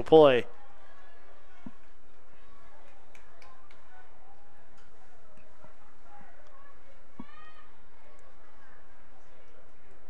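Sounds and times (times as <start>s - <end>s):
distant players' voices: 0.0s - 10.0s.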